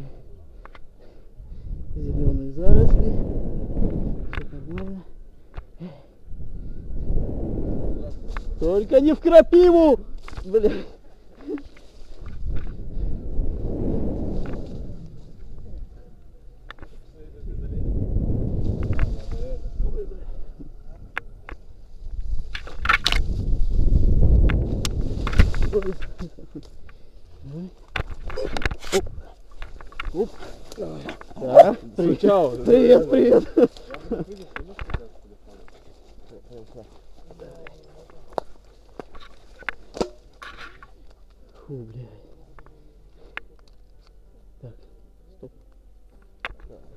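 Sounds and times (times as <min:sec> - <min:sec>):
wind buffeting microphone: 0:01.4 - 0:05.3, 0:06.2 - 0:10.2, 0:12.1 - 0:16.3, 0:17.2 - 0:26.2
footsteps on dirt path: 0:33.6 - 0:41.6.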